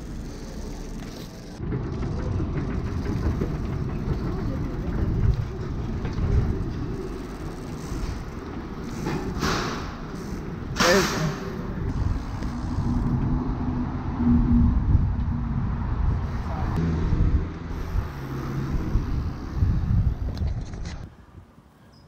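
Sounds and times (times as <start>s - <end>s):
bicycle rumbling over tiles: 0.0s - 21.1s.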